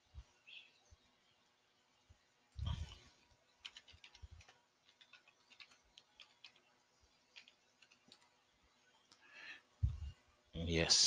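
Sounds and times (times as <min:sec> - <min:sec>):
computer keyboard keystrokes: 0:03.6 - 0:06.7, 0:07.4 - 0:08.3.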